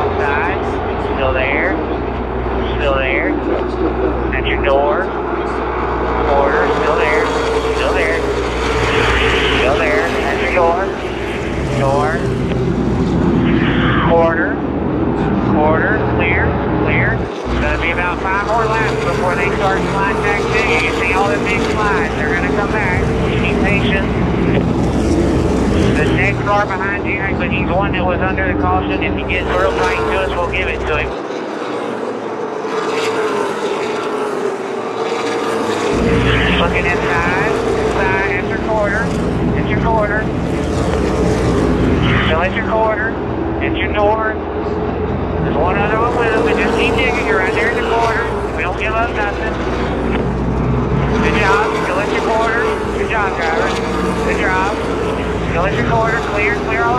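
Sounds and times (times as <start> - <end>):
race car engines passing: 0.0 - 56.9.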